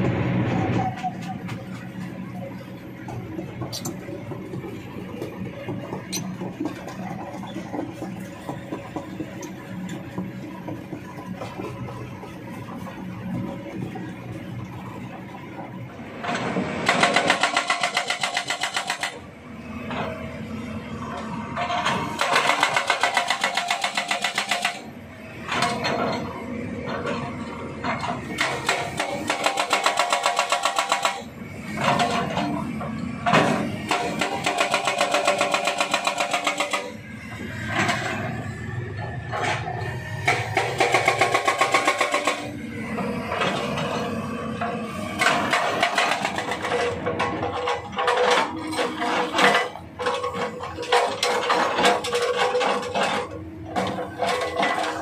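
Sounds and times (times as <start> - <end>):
diesel engine running: 0.0 - 23.5, 24.5 - 55.0
hydraulic breaker hammering rock: 16.8 - 19.2, 21.8 - 24.9, 28.2 - 32.6, 33.4 - 37.0, 40.3 - 42.6.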